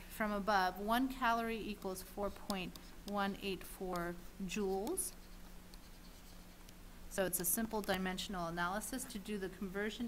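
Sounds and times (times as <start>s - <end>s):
low steady hum: 0.0s - 10.0s
stylus scratching on tablet: 1.0s - 8.5s.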